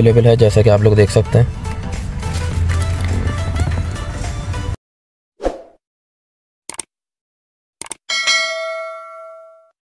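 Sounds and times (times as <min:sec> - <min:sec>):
bright bell-like ding: 0:08.1 - 0:09.7.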